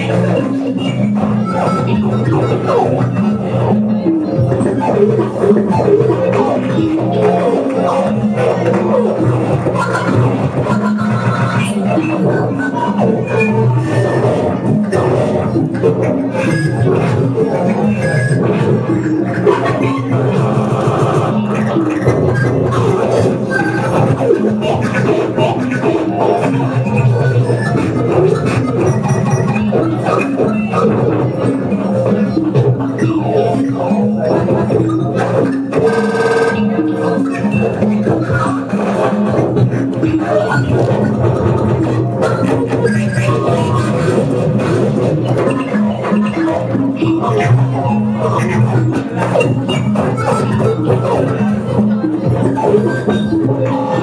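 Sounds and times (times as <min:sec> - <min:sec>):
electronic synthesizer music: 0:00.0 - 0:54.0
noisy clicking industrial texture: 0:00.0 - 0:54.0.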